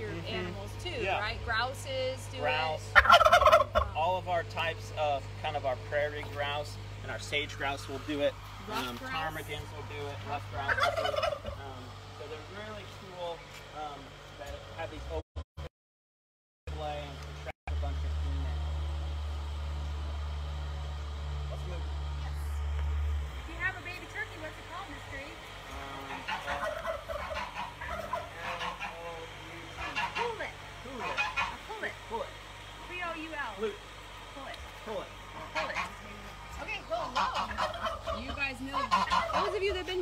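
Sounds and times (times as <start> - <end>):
low steady hum: 0.0 - 15.2, 16.7 - 40.0
turkey gobbling: 2.4 - 4.2, 10.3 - 11.9, 25.9 - 32.0, 35.3 - 40.0
barnyard fowl calling: 2.4 - 5.1, 7.0 - 11.9, 24.3 - 32.1, 35.1 - 40.0.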